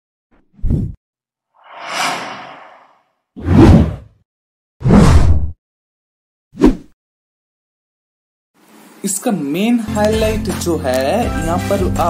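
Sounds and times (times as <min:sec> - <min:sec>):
soft airy whoosh: 0:01.6 - 0:03.0
loud deep whooshes: 0:01.6 - 0:04.0.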